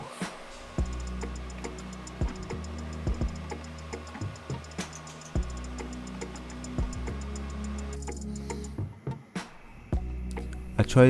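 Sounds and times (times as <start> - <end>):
music with steady beat: 0.8 - 10.7.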